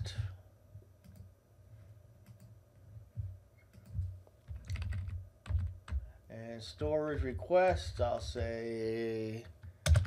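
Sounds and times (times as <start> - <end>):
computer keyboard key presses: 3.7 - 6.0, 9.6 - 10.0.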